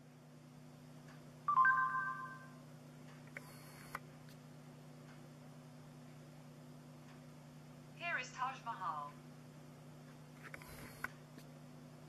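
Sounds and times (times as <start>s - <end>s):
faint steady hum: 0.0s - 12.0s
two-tone electronic chime: 1.5s - 2.6s.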